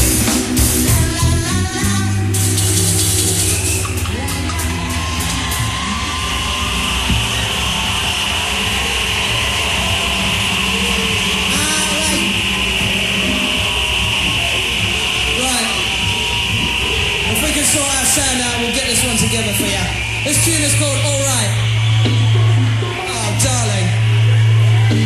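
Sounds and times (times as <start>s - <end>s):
live reggae band playing: 0.0s - 6.1s, 8.5s - 25.0s.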